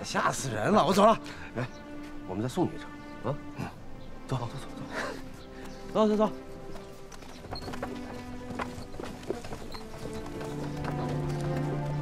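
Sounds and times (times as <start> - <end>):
background music low notes: 0.0 - 12.0
horse hooves clip-clopping: 5.3 - 12.0.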